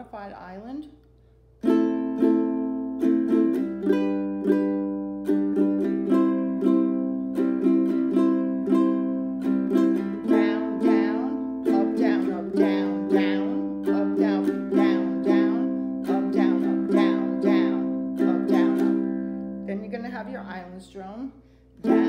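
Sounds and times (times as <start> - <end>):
ukulele strumming: 1.6 - 20.7, 21.8 - 22.0
woman calling out: 19.7 - 22.0.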